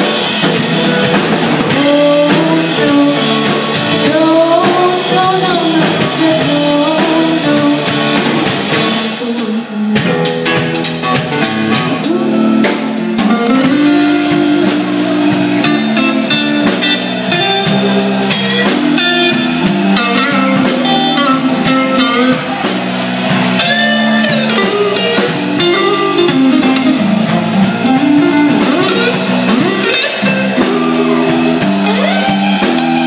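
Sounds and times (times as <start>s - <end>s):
drum kit beat: 0.0s - 33.0s
electric guitars: 0.0s - 33.0s.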